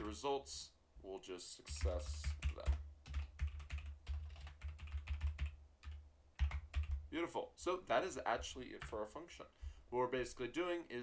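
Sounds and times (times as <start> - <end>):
computer keyboard typing: 1.6 - 7.1, 8.8 - 9.0.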